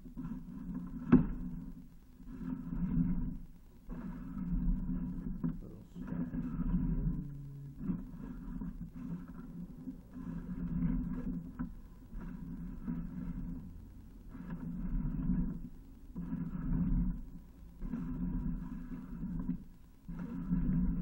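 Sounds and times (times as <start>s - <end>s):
cable feeding down drain rumble: 0.0s - 21.0s.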